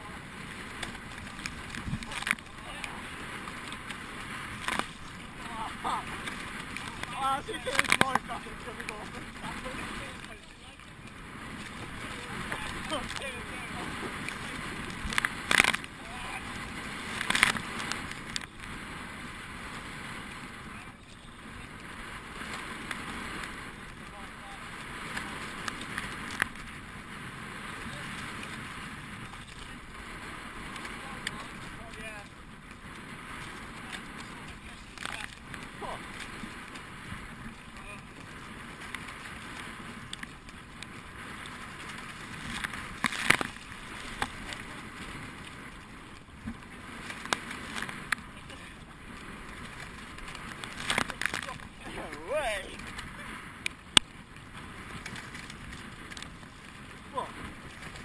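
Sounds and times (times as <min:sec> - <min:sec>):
water washing along boat hull: 0:00.0 - 0:58.0
oar blades splashing: 0:00.7 - 0:18.5, 0:41.4 - 0:44.7, 0:49.6 - 0:53.1.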